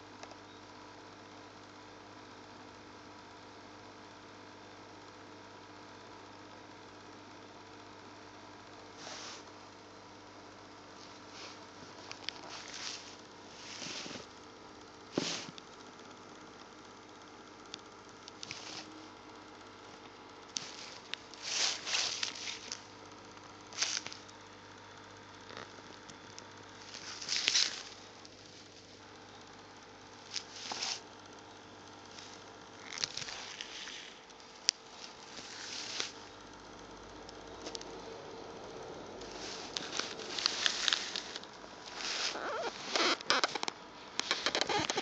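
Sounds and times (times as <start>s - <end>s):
steady low hum: 0.0s - 45.0s
handling noise rustle: 11.0s - 14.3s, 15.1s - 15.6s, 18.4s - 18.9s, 20.6s - 22.8s, 26.8s - 29.0s, 30.3s - 31.0s, 32.2s - 36.2s, 39.2s - 43.0s.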